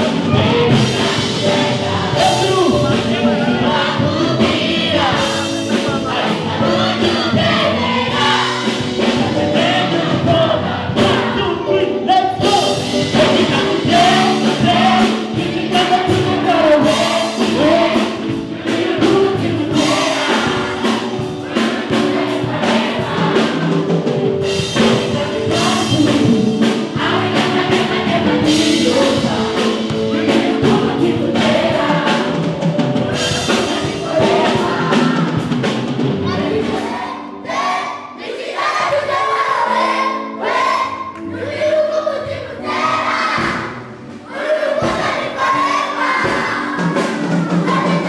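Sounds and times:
children singing in chorus: 0:00.0 - 0:11.7, 0:12.4 - 0:48.0
song music: 0:00.0 - 0:48.0.

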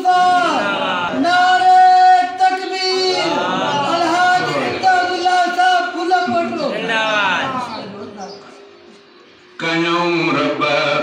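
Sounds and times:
man singing devotional chant: 0:09.6 - 0:11.0.

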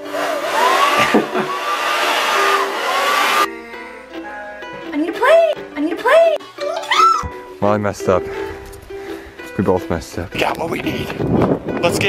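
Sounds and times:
hair dryer blowing: 0:00.0 - 0:03.5
background music: 0:00.0 - 0:12.0.

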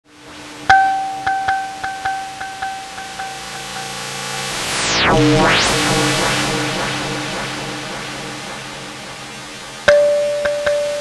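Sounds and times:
faint steady low tone: 0:00.7 - 0:04.2
kalimba tine plucked: 0:00.7 - 0:04.2, 0:09.9 - 0:11.0.

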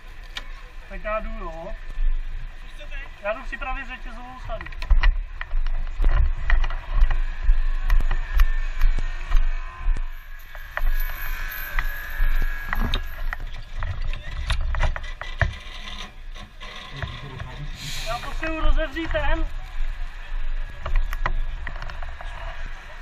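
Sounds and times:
low rumble of movement: 0:00.0 - 0:23.0
metallic clinks of rescue gear: 0:10.1 - 0:15.9.

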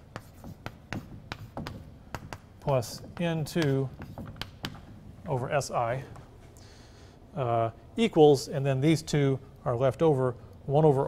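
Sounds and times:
chalk tapping and scraping: 0:00.0 - 0:06.3.

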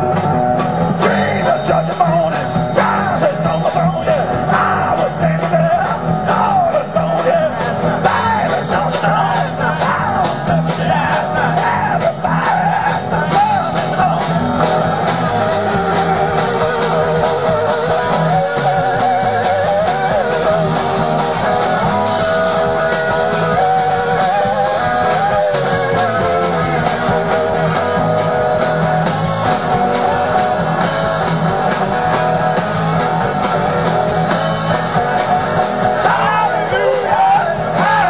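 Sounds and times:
blues-rock band playing: 0:00.0 - 0:38.0
electric guitar bending notes: 0:00.0 - 0:38.0
steady drum beat: 0:00.0 - 0:38.0.

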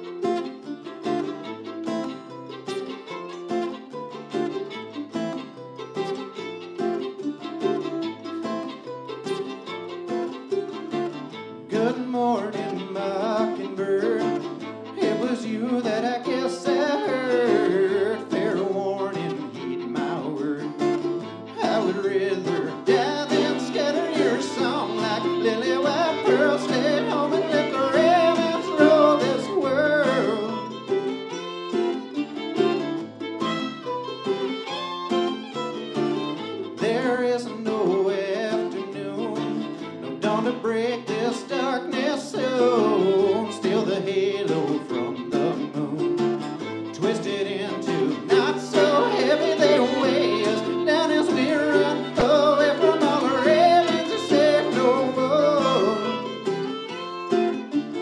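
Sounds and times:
fiddle: 0:00.0 - 0:58.0
mandolin: 0:00.0 - 0:58.0
strummed acoustic guitar: 0:00.0 - 0:58.0
man singing: 0:11.6 - 0:30.8, 0:36.8 - 0:56.7.

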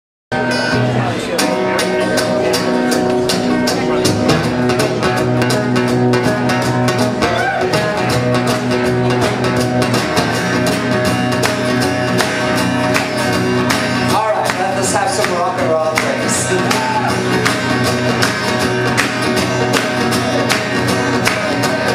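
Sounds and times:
acoustic guitars strumming: 0:00.3 - 0:21.9.

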